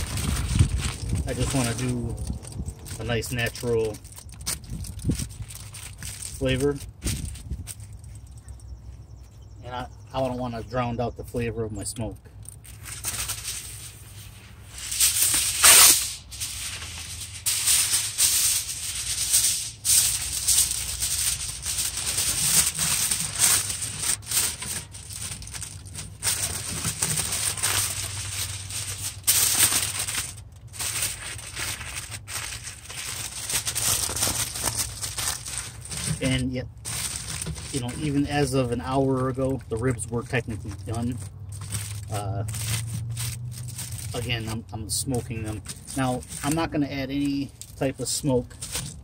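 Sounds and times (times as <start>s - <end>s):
aluminum foil crinkling: 0.0s - 8.5s, 12.4s - 49.0s.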